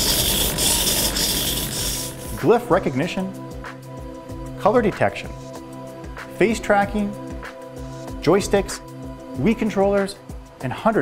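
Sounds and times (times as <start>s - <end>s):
servo motors whirring: 0.0s - 2.4s.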